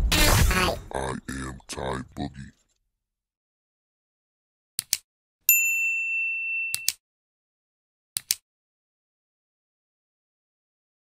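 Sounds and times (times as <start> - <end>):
bright bell-like ding: 5.5 - 6.9.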